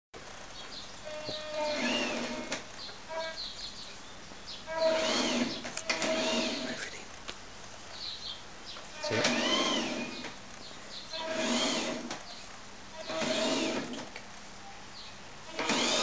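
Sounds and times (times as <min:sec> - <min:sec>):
electric motor whirring: 0:01.1 - 0:03.4, 0:04.7 - 0:06.9, 0:08.9 - 0:10.4, 0:11.1 - 0:12.2, 0:12.9 - 0:14.2, 0:15.5 - 0:16.0.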